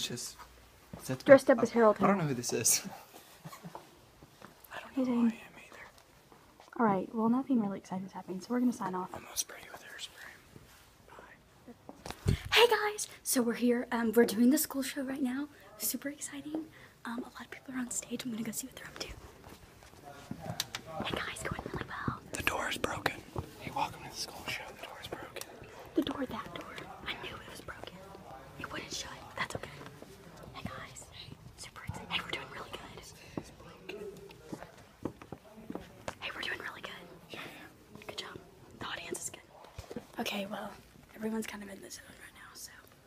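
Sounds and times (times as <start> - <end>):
people whispering: 4.4 - 7.0, 7.8 - 43.0.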